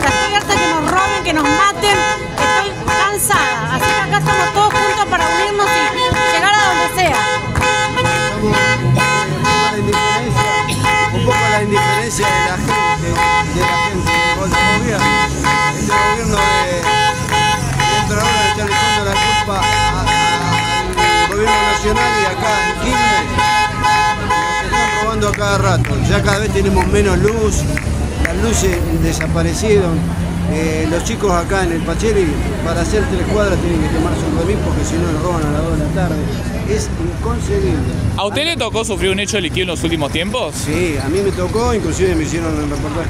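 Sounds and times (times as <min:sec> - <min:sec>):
car horns honking: 0:00.0 - 0:37.0.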